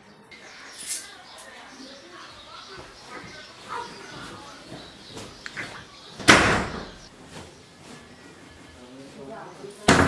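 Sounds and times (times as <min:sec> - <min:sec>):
door slamming shut: 0:06.2 - 0:07.1.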